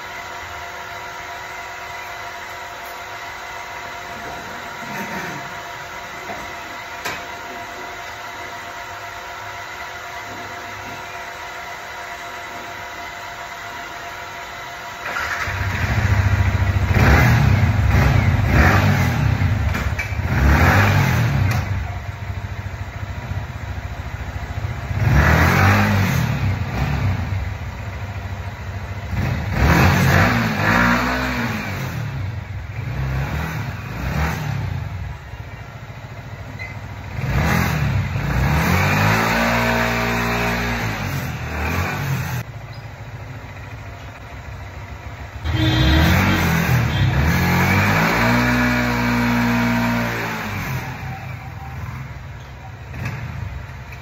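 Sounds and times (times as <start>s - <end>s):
motorcycle engine revving: 15.0s - 54.0s.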